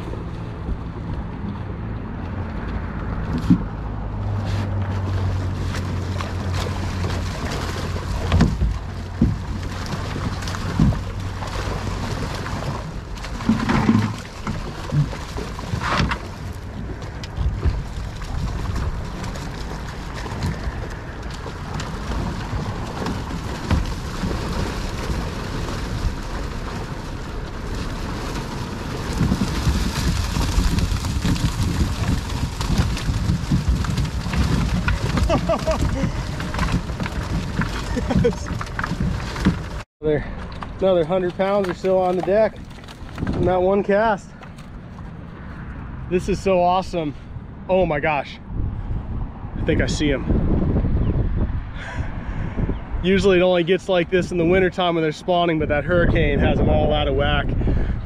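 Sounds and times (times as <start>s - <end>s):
wind on microphone: 0.0s - 39.8s, 42.4s - 43.9s, 44.8s - 54.8s, 55.5s - 58.0s
water lapping: 4.2s - 43.2s
water streaming and dripping: 4.2s - 43.2s.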